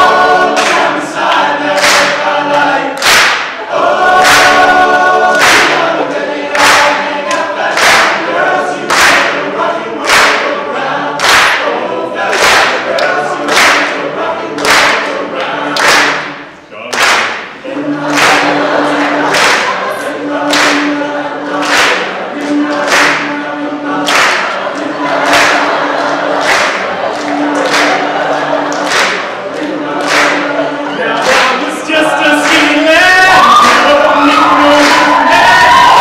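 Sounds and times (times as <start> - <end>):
male a cappella group singing: 0.0 - 16.5, 17.6 - 36.0
lead voice singing: 0.0 - 36.0.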